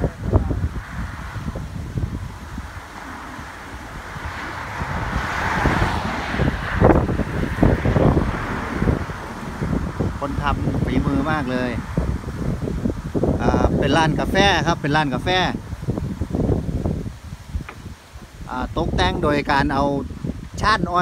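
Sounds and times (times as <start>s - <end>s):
vehicle passing on road: 0.0s - 20.5s
wind buffeting microphone: 0.0s - 21.0s.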